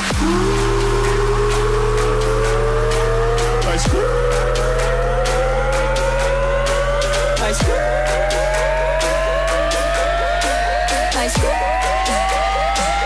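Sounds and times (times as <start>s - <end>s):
held low bass: 0.0s - 13.0s
quick downward synth sweep: 0.0s - 13.0s
rising synth line: 0.0s - 13.0s.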